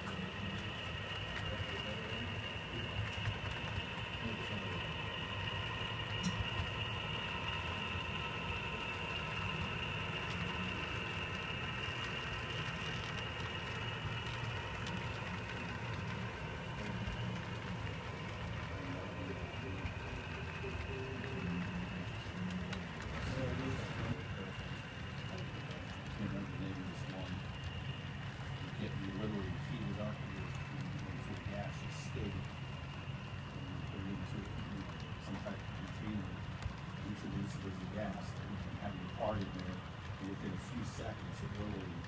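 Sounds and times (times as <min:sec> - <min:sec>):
model train running: 0:00.0 - 0:42.0.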